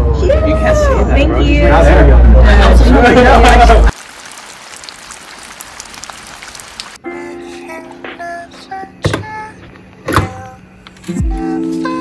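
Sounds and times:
rain pattering on surfaces: 3.4 - 7.0
background music with held notes: 7.0 - 12.0.

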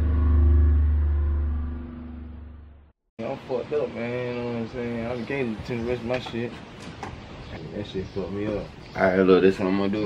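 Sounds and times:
deep sustained bass tone: 0.0 - 2.9.

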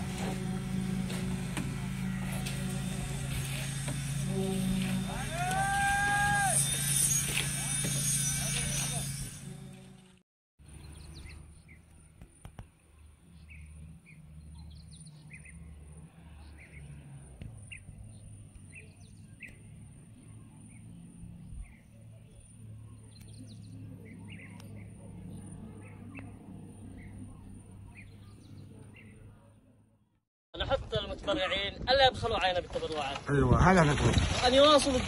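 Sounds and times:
faint high whine: 0.0 - 10.2
small birds chirping: 17.6 - 29.4.

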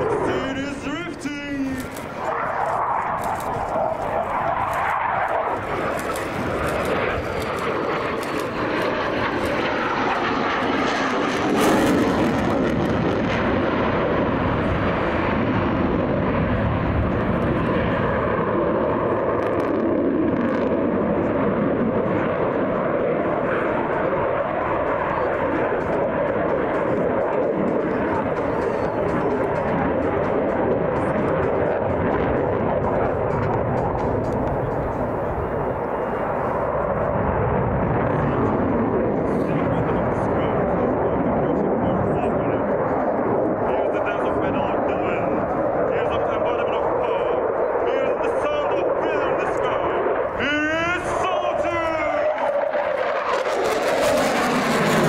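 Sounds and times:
jet engine roaring: 0.0 - 55.0.

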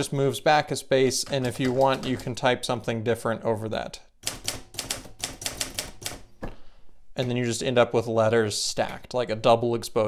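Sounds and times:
typewriter keystrokes: 4.2 - 6.3.

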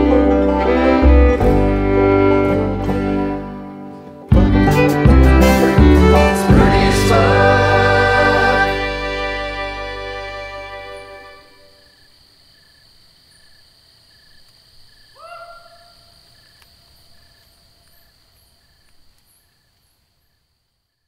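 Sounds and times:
band music: 0.0 - 11.7
insects chirping: 10.7 - 21.0
animal call: 15.1 - 18.1.

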